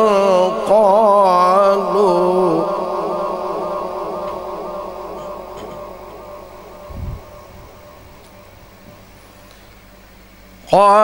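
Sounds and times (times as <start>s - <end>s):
man singing with echo: 0.0s - 9.1s, 10.7s - 11.0s.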